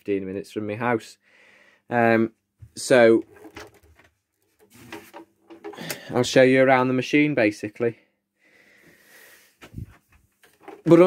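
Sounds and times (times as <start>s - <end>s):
man talking: 0.0s - 1.2s, 1.9s - 3.3s, 5.8s - 8.0s.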